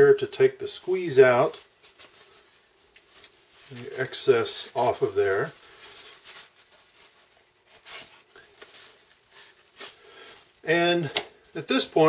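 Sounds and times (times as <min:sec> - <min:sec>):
paper towel rustling: 0:00.7 - 0:12.0.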